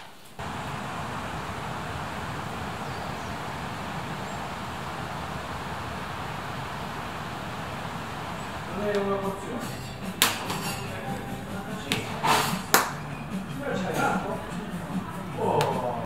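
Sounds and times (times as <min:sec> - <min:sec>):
rushing outdoor ambience: 0:00.4 - 0:15.4.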